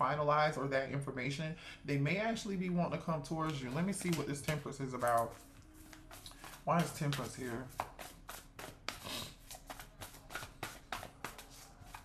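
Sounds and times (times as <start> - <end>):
cards being shuffled: 3.4 - 12.0.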